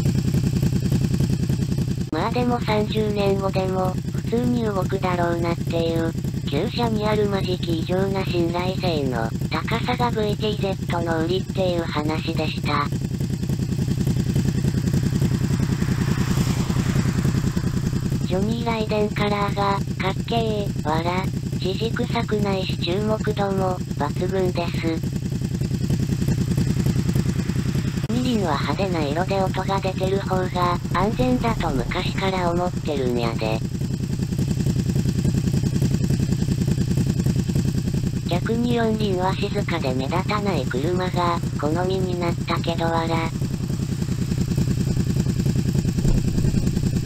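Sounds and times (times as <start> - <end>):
motorcycle engine idling: 0.0 - 47.0.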